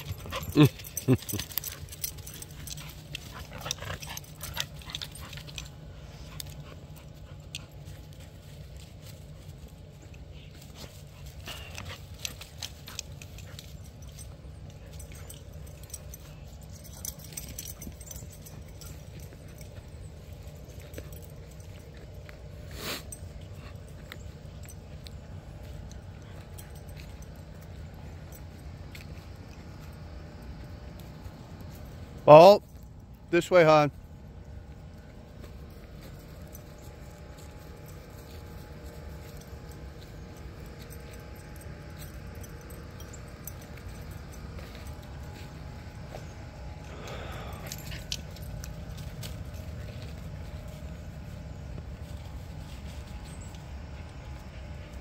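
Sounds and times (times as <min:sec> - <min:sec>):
dog sounds: 0:00.0 - 0:08.1.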